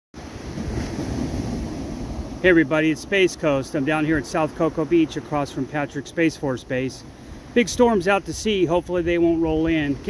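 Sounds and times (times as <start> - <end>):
ocean surf washing onto beach: 0.2 - 10.0.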